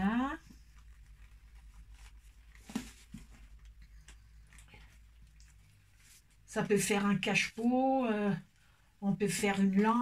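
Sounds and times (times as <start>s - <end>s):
low steady hum: 0.0s - 10.0s
gloved hands squishing wet fabric: 0.1s - 7.7s.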